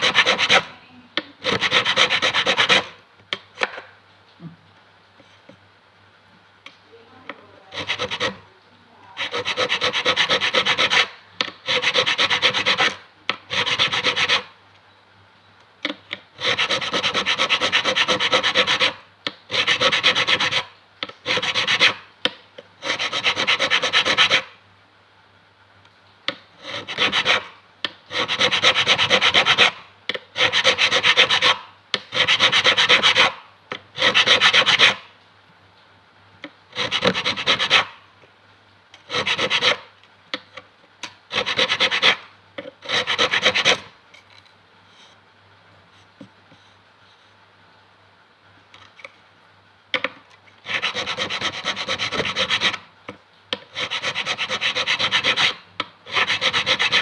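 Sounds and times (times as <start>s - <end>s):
file scraping metal frets: 7.7s - 8.4s, 9.2s - 14.5s, 39.1s - 39.9s, 42.8s - 43.9s, 50.7s - 52.8s, 53.7s - 57.0s.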